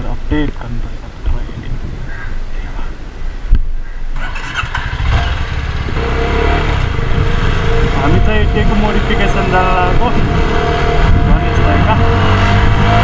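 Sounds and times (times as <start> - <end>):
motorcycle engine accelerating: 4.2 - 13.0.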